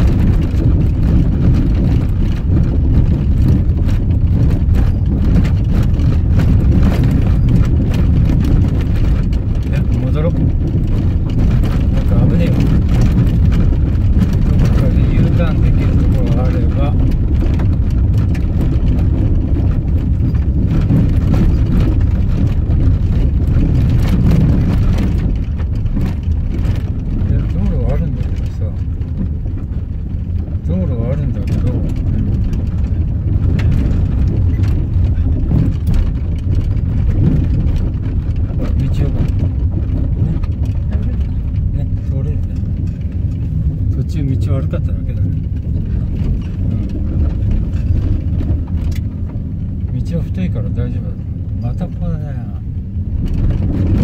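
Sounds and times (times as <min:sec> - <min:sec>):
engine and tyres rumbling: 0:00.0 - 0:54.0.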